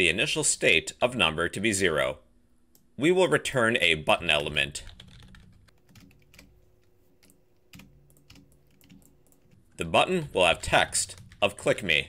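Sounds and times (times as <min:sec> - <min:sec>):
keyboard typing: 0:04.8 - 0:09.8, 0:10.4 - 0:11.9.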